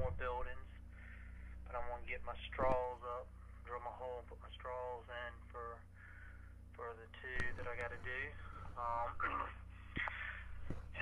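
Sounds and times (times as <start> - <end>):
steady low hum: 0.0 - 11.0
man breathing: 0.8 - 1.7, 5.8 - 6.7, 8.3 - 8.8, 9.6 - 11.0.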